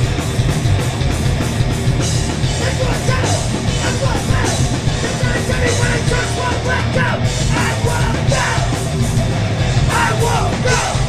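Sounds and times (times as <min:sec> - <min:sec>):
bass guitar: 0:00.0 - 0:11.0
distorted electric guitar: 0:00.0 - 0:11.0
drums: 0:00.0 - 0:11.0
shouted vocals: 0:02.6 - 0:08.8, 0:09.8 - 0:11.0.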